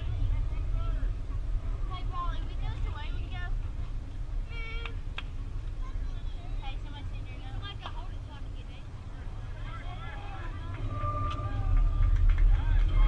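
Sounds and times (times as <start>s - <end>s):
distant voices calling out: 0.0s - 13.0s
low microphone rumble: 0.0s - 13.0s.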